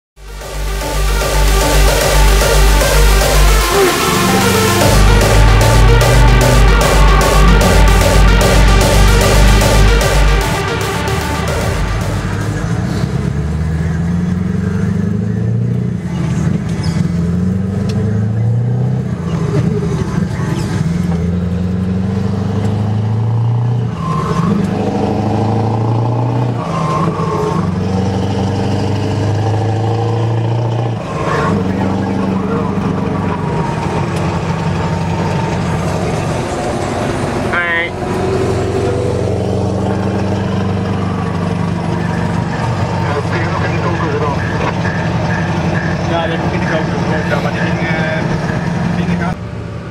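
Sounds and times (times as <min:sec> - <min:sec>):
diesel truck engine accelerating: 0:00.2 - 0:49.9.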